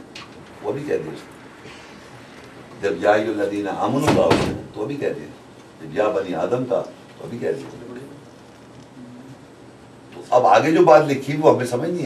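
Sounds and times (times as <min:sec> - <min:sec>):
man speaking emphatically: 0:02.8 - 0:08.2.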